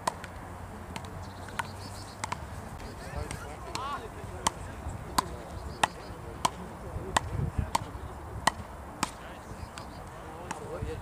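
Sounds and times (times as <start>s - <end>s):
paddles striking ball: 0.0s - 2.5s, 3.2s - 10.8s.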